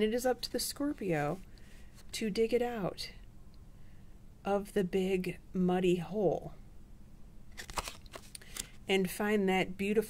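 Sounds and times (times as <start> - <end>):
card rustling on cloth table: 7.5 - 8.8.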